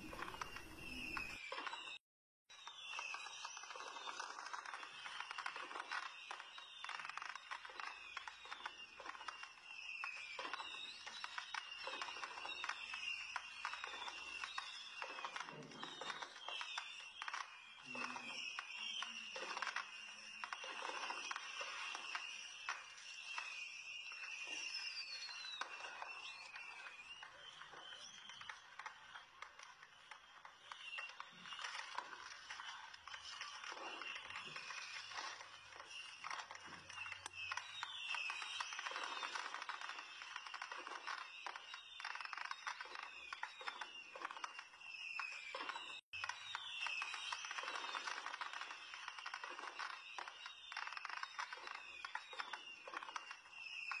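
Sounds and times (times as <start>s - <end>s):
shop background ambience: 0.0s - 1.4s.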